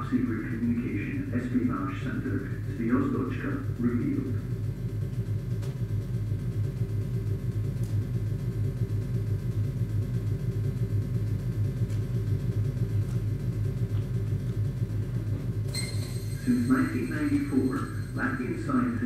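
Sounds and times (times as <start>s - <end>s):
low rumble over loudspeakers: 0.0s - 19.0s.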